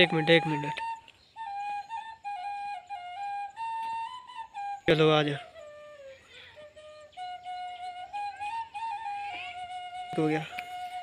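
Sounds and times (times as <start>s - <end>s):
flute playing slow melody: 0.0s - 11.0s.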